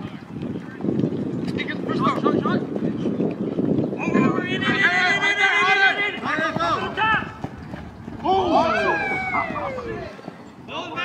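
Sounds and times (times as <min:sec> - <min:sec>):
outdoor field noise: 0:00.0 - 0:11.0
men shouting: 0:04.1 - 0:07.4, 0:08.2 - 0:10.2.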